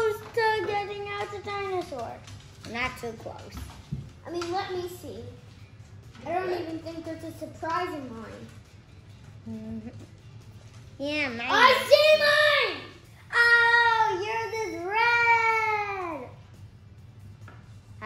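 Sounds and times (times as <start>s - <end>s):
child making wordless sounds: 11.0s - 16.4s.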